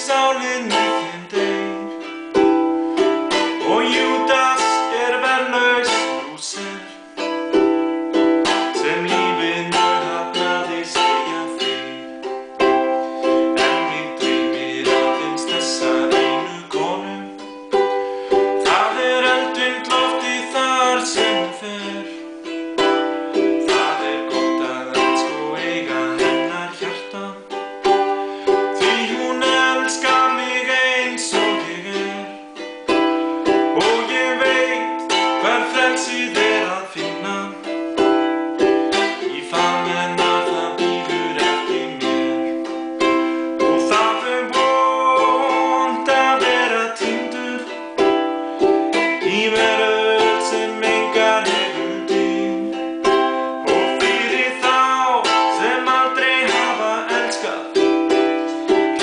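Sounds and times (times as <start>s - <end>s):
man singing: 0.0s - 59.0s
ukulele strumming chords: 0.0s - 59.0s.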